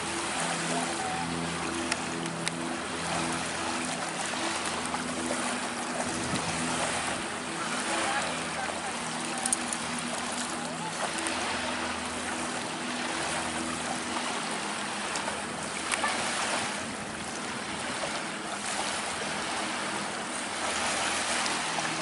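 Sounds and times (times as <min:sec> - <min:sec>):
low engine drone: 0:00.0 - 0:22.0
ocean surf washing in: 0:00.0 - 0:22.0.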